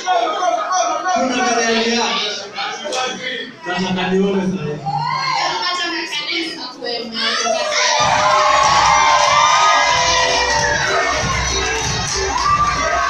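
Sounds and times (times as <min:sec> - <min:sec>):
crowd shouting and cheering: 0:03.5 - 0:06.3, 0:07.1 - 0:13.0.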